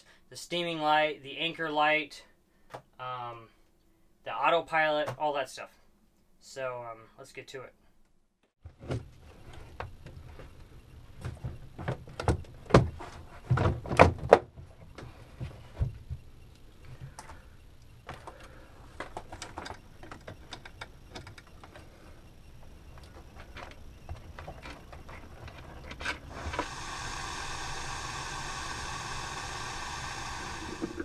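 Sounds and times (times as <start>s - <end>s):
steady low hum: 9.0s - 31.0s.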